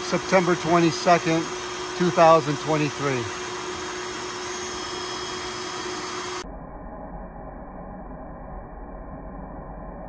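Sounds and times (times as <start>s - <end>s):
vacuum rushing and humming: 0.0s - 10.0s
dull low hum: 3.3s - 10.0s.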